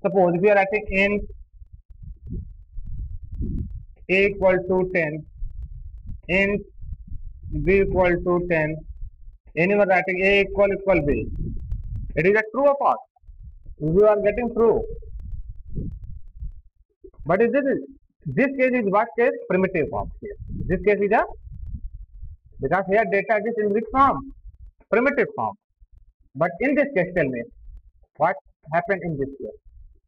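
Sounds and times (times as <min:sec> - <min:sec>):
person speaking: 0:00.0 - 0:01.3, 0:02.0 - 0:06.8, 0:07.4 - 0:08.9, 0:09.6 - 0:13.0, 0:13.6 - 0:15.2, 0:17.1 - 0:21.5, 0:22.6 - 0:24.3, 0:24.9 - 0:25.6, 0:26.4 - 0:27.5, 0:28.2 - 0:29.6
muffled thumps and rumble: 0:00.8 - 0:12.4, 0:13.2 - 0:17.4, 0:19.9 - 0:22.8, 0:23.9 - 0:24.9, 0:27.5 - 0:28.1.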